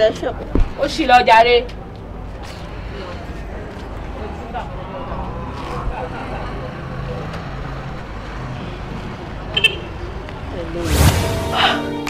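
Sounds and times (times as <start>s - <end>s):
hum of road traffic: 0.0s - 12.0s
whoosh: 10.8s - 11.8s.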